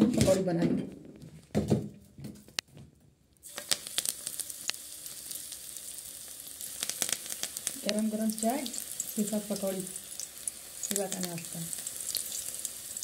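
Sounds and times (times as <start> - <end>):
food deep-frying in oil: 3.4 - 13.0.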